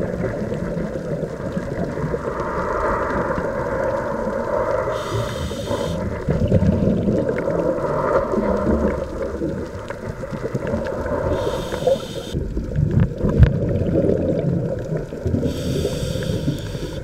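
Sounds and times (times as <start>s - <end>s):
exhaled bubbles rumbling: 0.0s - 17.0s
underwater regulator rushing: 4.5s - 8.9s, 10.7s - 12.4s
short hiss: 5.0s - 6.0s, 11.4s - 12.4s, 15.5s - 17.0s.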